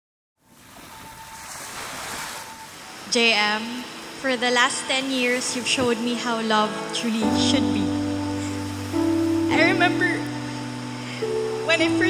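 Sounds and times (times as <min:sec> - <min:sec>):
waves washing on beach: 0:00.5 - 0:12.0.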